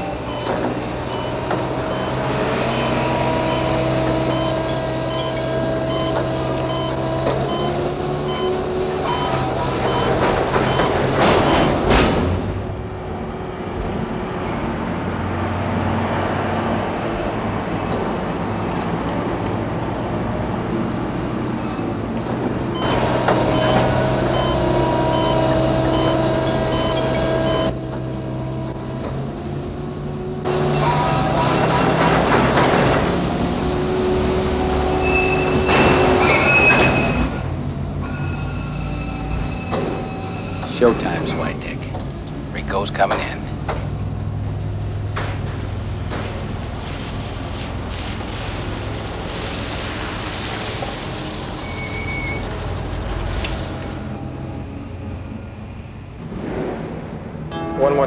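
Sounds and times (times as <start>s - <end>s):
high warning beep: 0.0s - 11.8s, 22.8s - 27.8s
diesel engine drone: 0.0s - 58.0s
rushing surge: 46.7s - 57.4s.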